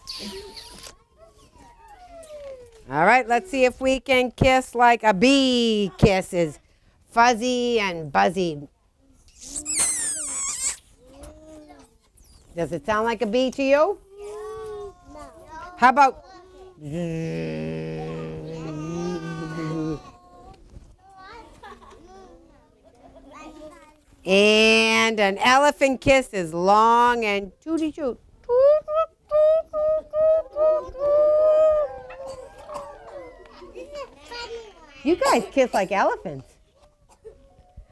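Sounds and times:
children making squeaky noises: 0.0 - 2.8, 9.2 - 12.5, 30.0 - 35.4
people tooting like an elephant: 16.8 - 20.1, 28.5 - 33.4
children tooting: 16.8 - 20.4, 29.3 - 34.8.

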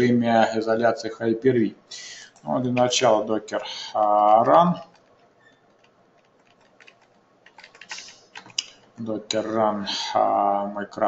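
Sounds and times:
computer keyboard typing: 2.3 - 8.9.

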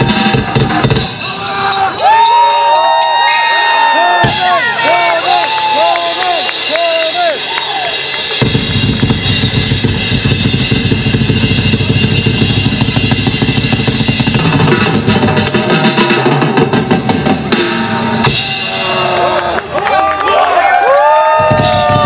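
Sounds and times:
metal band playing live: 0.0 - 3.5, 4.1 - 19.6, 21.4 - 22.0
sharp drum strikes: 4.2 - 5.2, 8.3 - 19.1.

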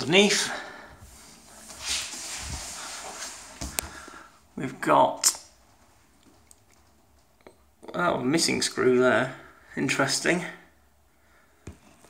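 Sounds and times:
rustling and handling noise: 1.0 - 4.3.

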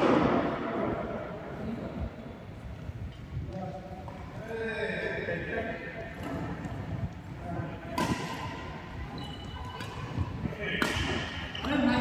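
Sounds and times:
racket hitting shuttlecock: 7.9 - 8.7, 9.6 - 11.9.

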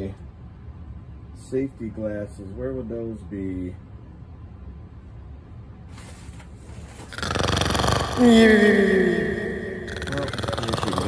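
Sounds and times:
man murmuring: 8.2 - 11.0
man's falling vocal sound: 8.2 - 11.0.

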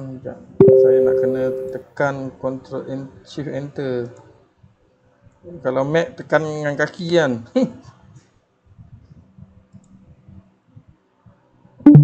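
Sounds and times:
faint low hum: 0.6 - 1.8.

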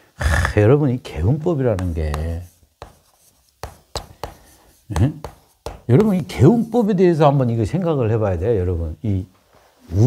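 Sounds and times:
chalk scraping on chalkboard: 1.1 - 7.4.

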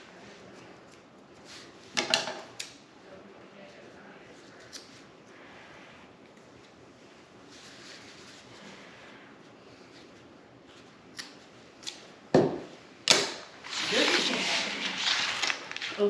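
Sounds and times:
plastic wrap crinkling: 13.6 - 16.0.

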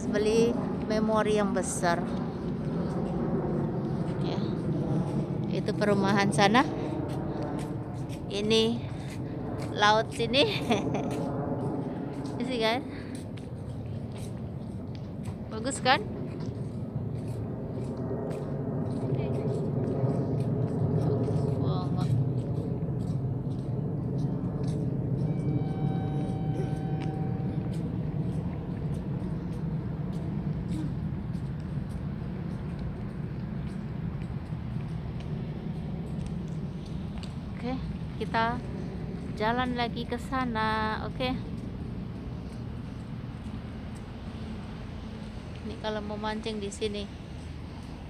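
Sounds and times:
faint hum: 0.0 - 48.0
low outdoor rumble: 0.0 - 48.0.

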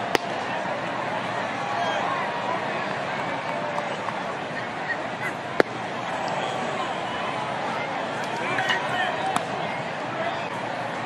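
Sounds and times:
crowd noise: 0.0 - 11.0
ball popping into mitt: 5.6 - 5.8.

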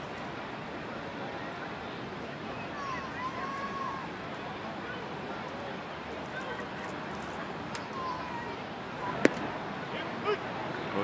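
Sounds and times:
murmur of crowd: 0.0 - 11.0
baseball smacking into mitt: 9.2 - 9.5.

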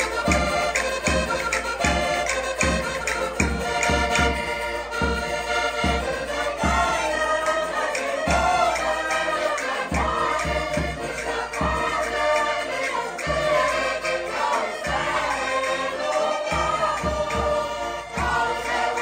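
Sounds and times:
button accordions playing: 0.0 - 19.0
group of people singing: 0.0 - 19.0.

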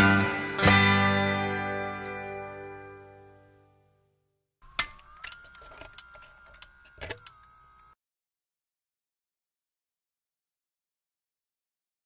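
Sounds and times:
mechanical clicks and clunks: 4.6 - 7.9.

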